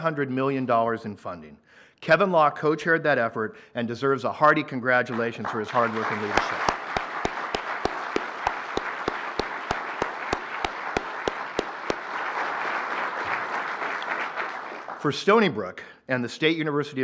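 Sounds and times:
close person clapping: 5.1s - 15.1s
audience applauding: 5.2s - 15.2s.

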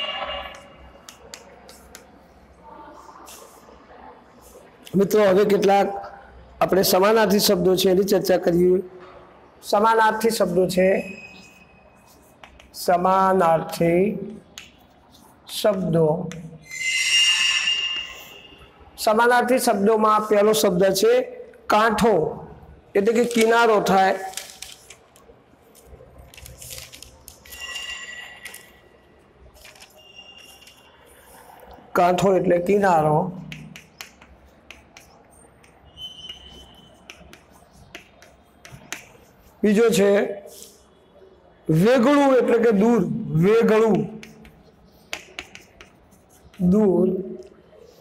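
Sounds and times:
chalk tapping and scraping: 0.2s - 2.3s, 11.2s - 13.0s, 14.4s - 18.6s, 25.7s - 28.8s, 29.5s - 31.7s, 32.7s - 39.8s, 43.6s - 48.0s
chalk squeak: 11.0s - 12.6s, 16.6s - 18.7s, 27.4s - 28.8s, 29.8s - 31.4s, 33.8s - 39.6s, 44.2s - 46.7s
high-pitched ringing tone: 16.7s - 18.7s, 27.5s - 28.9s.

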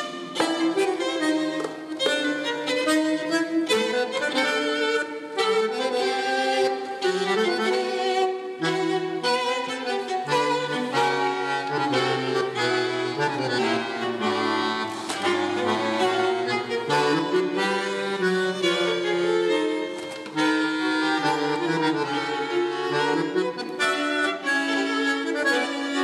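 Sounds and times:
bandoneon melody: 0.0s - 26.0s
string orchestra: 0.0s - 26.0s.

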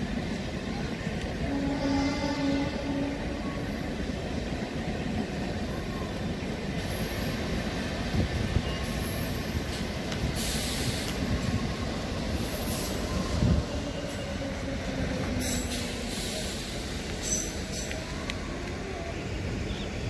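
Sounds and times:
train wheels rumbling on track: 0.0s - 20.0s.

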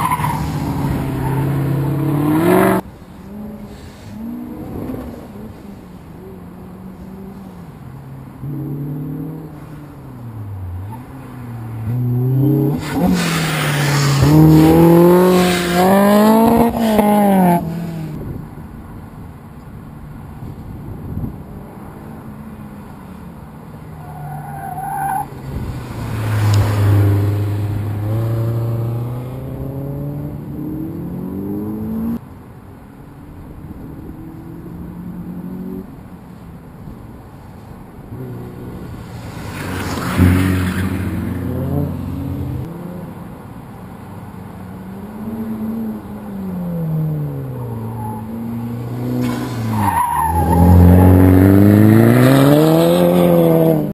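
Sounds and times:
car engine revving: 8.4s - 18.2s, 45.2s - 53.9s
tyre squeal: 47.7s - 51.3s.

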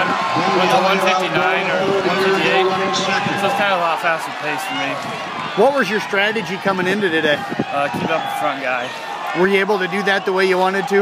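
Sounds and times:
young man talking: 0.0s - 5.0s, 5.6s - 11.0s.

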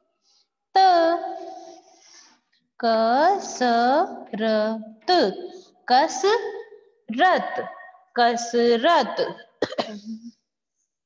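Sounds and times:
woman speaking: 0.8s - 1.5s, 2.8s - 9.4s
throat clearing: 9.6s - 10.4s.

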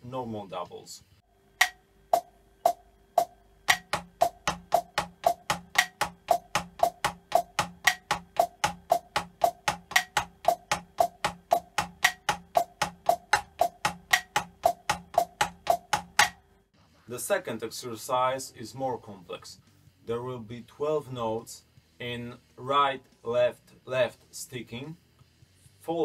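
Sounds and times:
drumsticks on practice pad: 1.6s - 16.4s.

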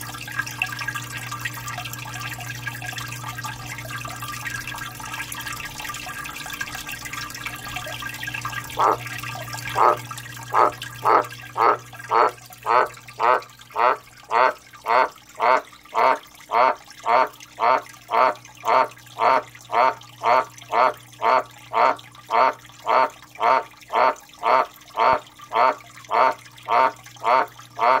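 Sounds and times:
frog croaking hoarsely: 8.7s - 28.0s.

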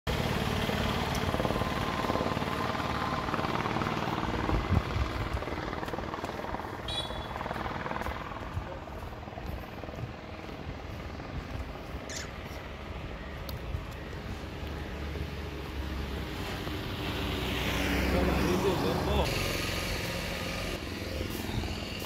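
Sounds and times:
vehicle engine rumbling: 0.1s - 22.0s.

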